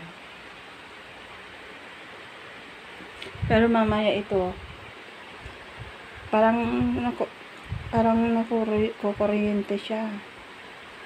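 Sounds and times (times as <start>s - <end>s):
air conditioner: 0.0s - 11.0s.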